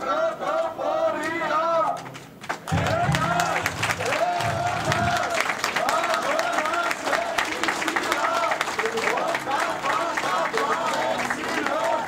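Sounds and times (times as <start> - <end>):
crowd applause: 2.1 - 12.0
raised voices: 2.7 - 12.0.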